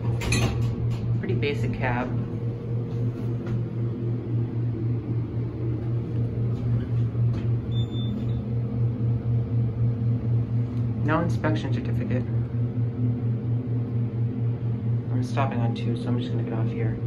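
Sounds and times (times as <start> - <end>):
elevator humming: 0.0 - 17.0.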